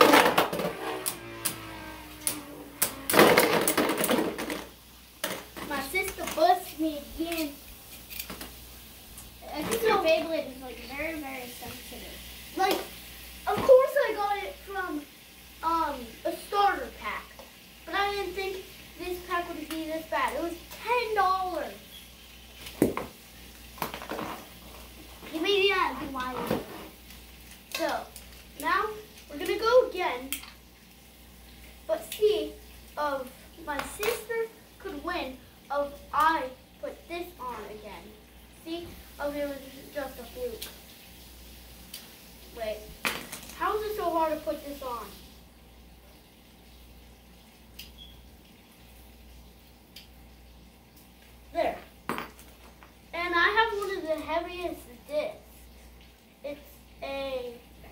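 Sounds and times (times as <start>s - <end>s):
children talking: 5.6s - 7.6s, 9.4s - 12.9s, 13.5s - 21.8s.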